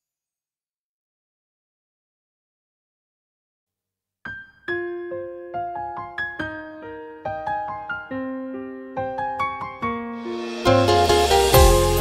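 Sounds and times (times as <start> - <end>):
slow piano melody: 4.3 - 12.0.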